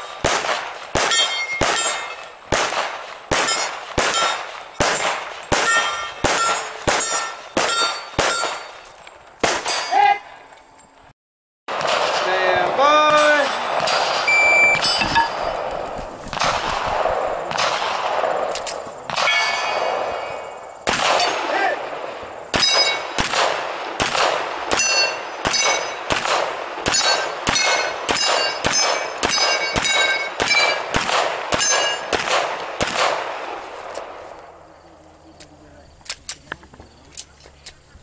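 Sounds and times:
pistol shots: 0.0 - 8.8, 9.4 - 10.0, 11.7 - 34.2
metallic ring of steel plate: 1.1 - 2.2, 5.6 - 8.8, 14.7 - 15.5, 27.0 - 31.0.

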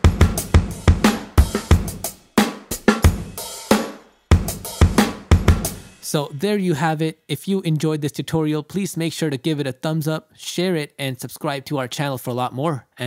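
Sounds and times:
sampled drum beat: 0.0 - 7.0.

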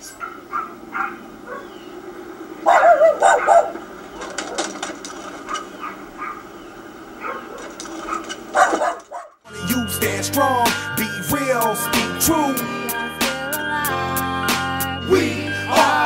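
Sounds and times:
dog barking: 0.2 - 1.8, 2.6 - 4.7, 5.4 - 6.5, 7.2 - 9.4.

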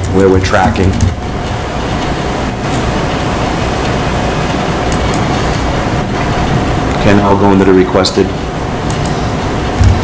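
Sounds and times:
faint steady hum: 0.0 - 10.0
low rumble and hiss: 0.0 - 10.0.

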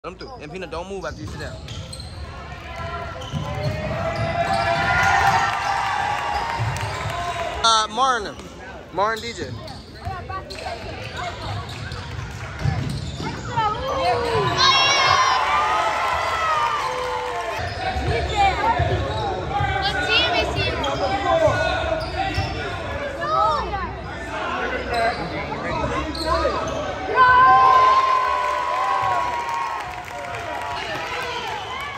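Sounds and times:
sneakers squeaking: 0.8 - 7.3, 8.2 - 15.3, 17.6 - 27.3.

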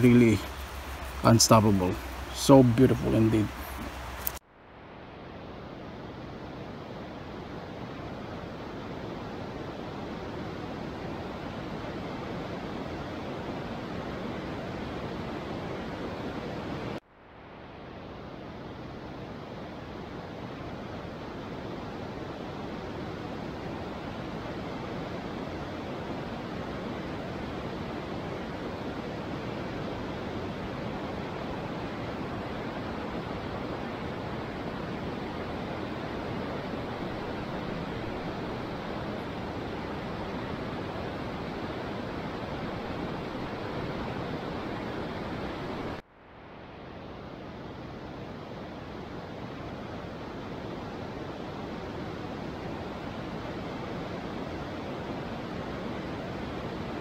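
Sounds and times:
steady rushing hiss: 0.0 - 57.0.

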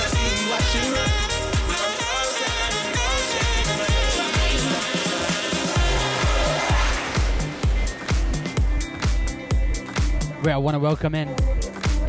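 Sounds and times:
dance music with kick drum: 0.0 - 12.0.

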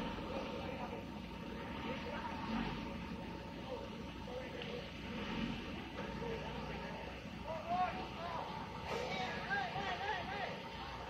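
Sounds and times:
distant machinery hum: 0.0 - 11.0.

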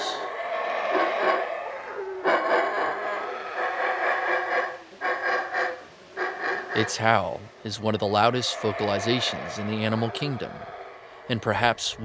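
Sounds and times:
howler monkey howling: 0.0 - 12.0.

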